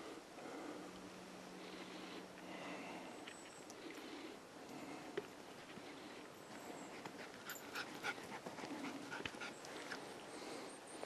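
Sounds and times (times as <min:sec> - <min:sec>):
dog panting: 0:06.9 - 0:10.1.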